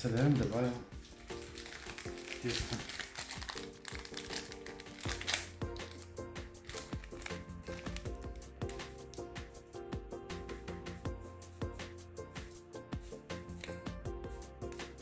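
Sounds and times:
plastic packet crinkling: 0:00.0 - 0:09.3
background music: 0:00.0 - 0:15.0.

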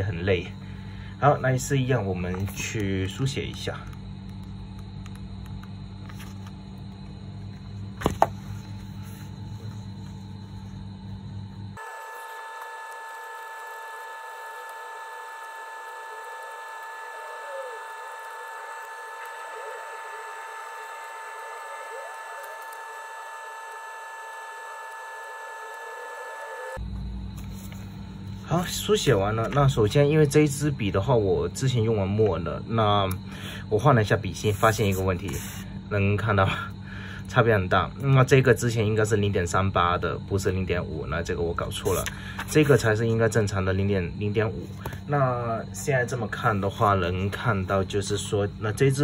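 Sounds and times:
room hum: 0:00.0 - 0:49.0.

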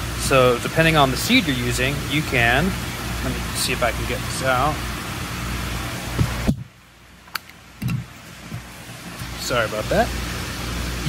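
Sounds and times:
mechanical background hum: 0:00.0 - 0:11.0.

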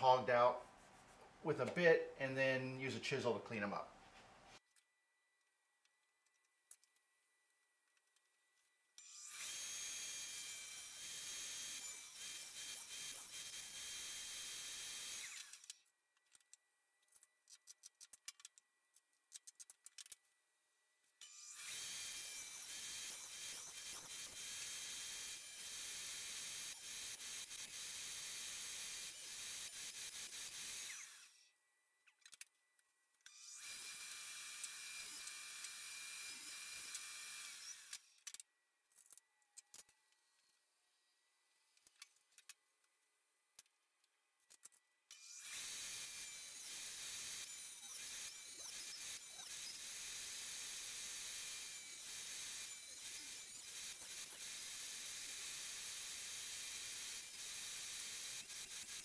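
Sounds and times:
table saw cutting wood: 0:09.0 - 0:15.6, 0:21.2 - 0:31.4, 0:33.3 - 0:38.2, 0:45.1 - 0:59.0.

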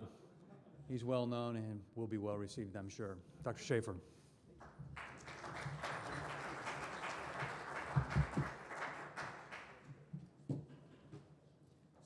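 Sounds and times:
audience applauding: 0:04.9 - 0:09.9.

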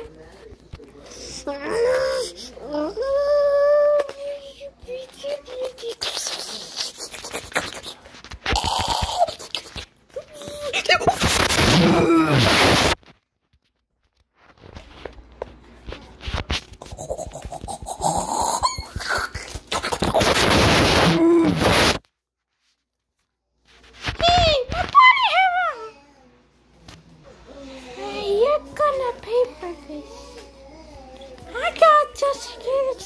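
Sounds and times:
harsh distorted sound effect: 0:11.0 - 0:13.0, 0:19.7 - 0:22.0
short cry: 0:11.3 - 0:13.0.

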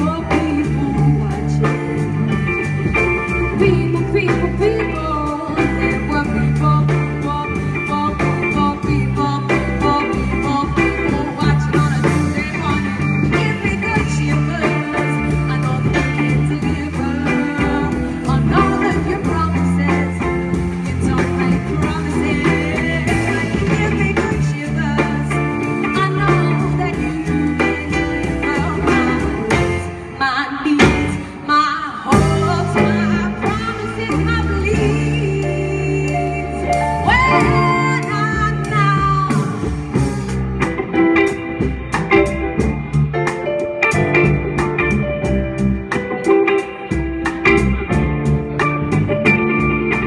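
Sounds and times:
person singing: 0:00.0 - 0:02.2, 0:03.5 - 0:40.3
live band playing a song: 0:00.0 - 0:50.0.

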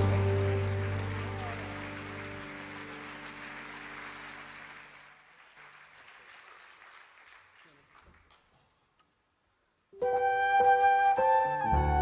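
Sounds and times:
acoustic ensemble final chord: 0:00.0 - 0:04.8.

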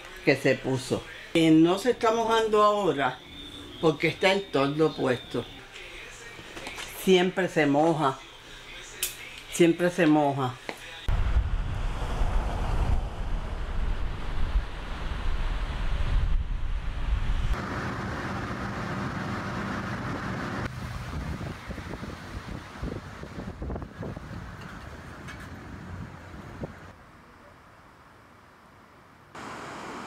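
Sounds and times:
wind buffeting microphone: 0:11.1 - 0:17.6, 0:20.7 - 0:26.9.

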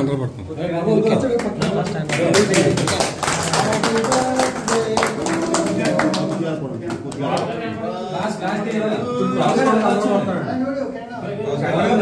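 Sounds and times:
people clapping in rhythm: 0:01.2 - 0:10.2.

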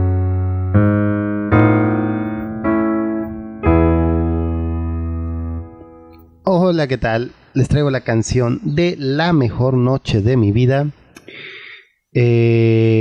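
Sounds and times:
digital piano slow chords: 0:00.0 - 0:06.4.

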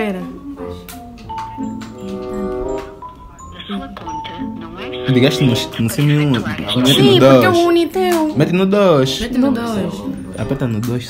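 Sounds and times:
phone melody of held notes: 0:01.2 - 0:07.8
recorded voice on phone speaker: 0:03.4 - 0:07.7.

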